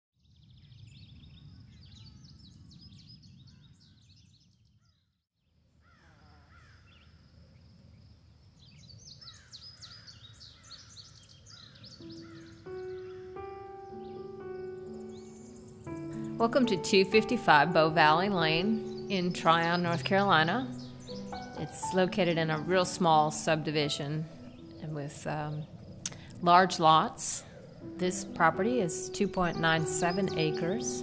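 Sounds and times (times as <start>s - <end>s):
birds chirping: 0.4s - 5.1s, 8.6s - 31.0s
music with held notes: 12.0s - 25.4s, 27.8s - 31.0s.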